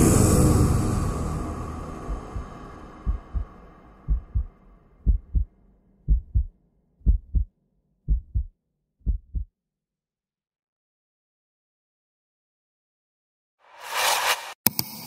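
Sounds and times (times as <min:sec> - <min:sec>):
soundtrack music: 0:00.0 - 0:04.5
heartbeat thumps: 0:02.1 - 0:03.5, 0:04.1 - 0:05.5, 0:06.1 - 0:07.5, 0:08.1 - 0:09.5.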